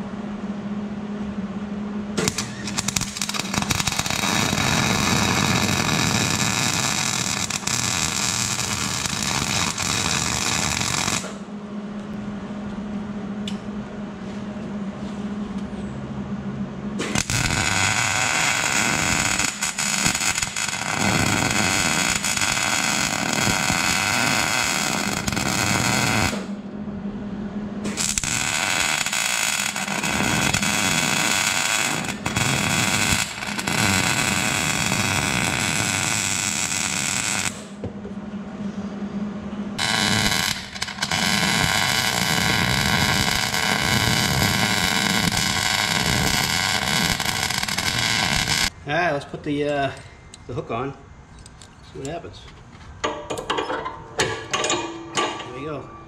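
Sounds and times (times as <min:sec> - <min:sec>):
welder arc crackling: 0:02.2 - 0:11.4, 0:17.0 - 0:26.5, 0:27.9 - 0:37.8, 0:39.8 - 0:48.8.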